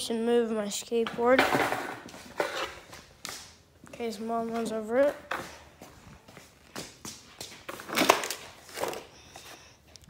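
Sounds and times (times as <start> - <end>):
knocks and scrapes: 1.1 - 3.0.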